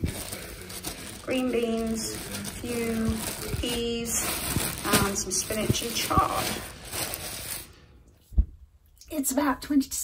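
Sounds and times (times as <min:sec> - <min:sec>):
plastic bag crinkling: 0:00.0 - 0:08.0
low thump: 0:08.4 - 0:08.6.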